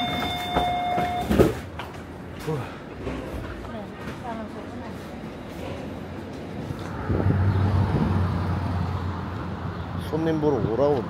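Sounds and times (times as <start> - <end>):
road noise: 0.0 - 11.0
vehicle engine droning: 6.7 - 11.0.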